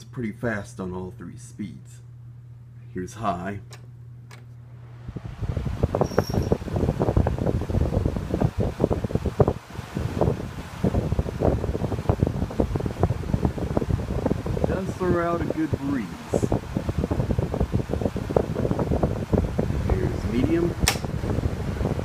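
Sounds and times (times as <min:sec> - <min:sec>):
fan motor hum: 0:00.0 - 0:22.0
wind noise buffeting microphone: 0:05.0 - 0:22.0.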